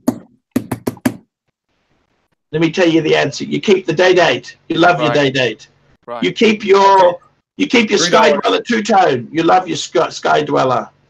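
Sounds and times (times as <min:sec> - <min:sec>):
sharp knocks: 0:00.0 - 0:01.3.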